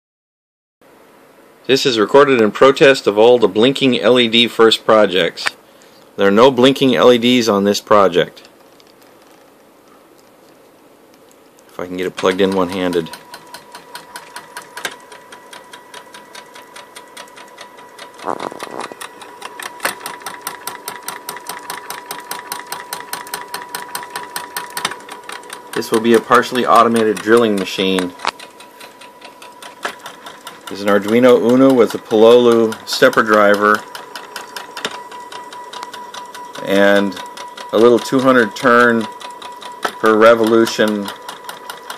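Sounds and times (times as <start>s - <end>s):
rapid stepper motor clicks: 11.9s - 41.9s
stepper motor whine: 18.1s - 25.1s.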